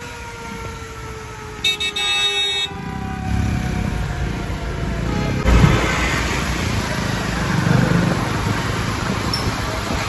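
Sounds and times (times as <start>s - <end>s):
motorcycle and scooter engines: 0.0s - 10.0s
vehicle horn honking: 1.6s - 3.0s.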